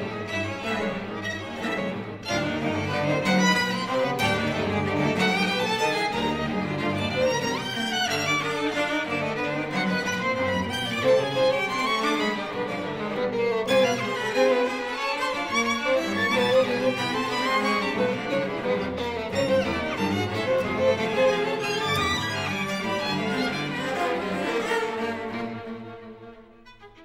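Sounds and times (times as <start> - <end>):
string quartet playing: 0.0 - 27.0.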